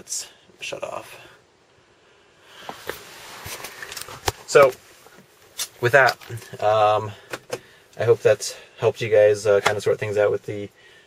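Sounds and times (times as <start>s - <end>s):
camera handling rustle: 2.7s - 4.5s.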